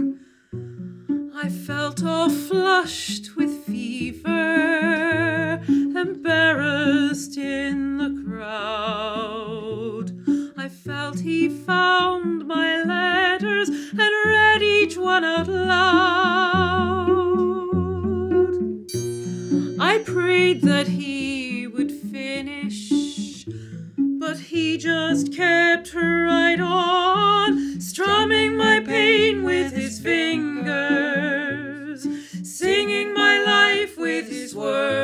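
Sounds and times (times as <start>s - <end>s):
cello low held notes: 0.0s - 35.0s
woman singing slow ballad: 24.2s - 35.0s.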